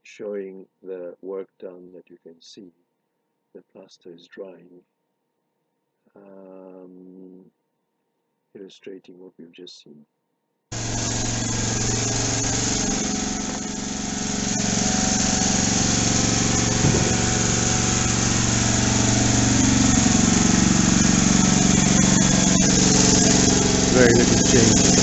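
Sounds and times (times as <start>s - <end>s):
small engine running: 10.7s - 25.0s.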